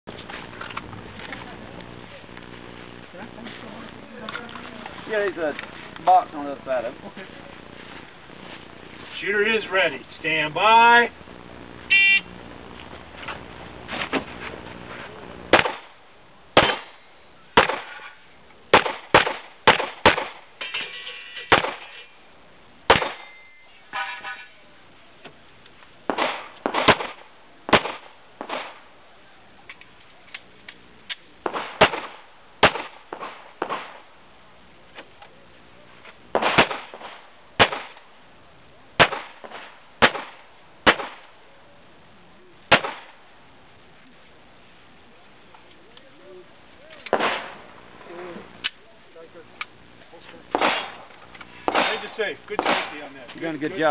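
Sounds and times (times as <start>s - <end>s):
handgun shots: 15.5s - 15.9s, 42.7s - 43.1s, 50.5s - 51.0s, 51.7s - 53.0s.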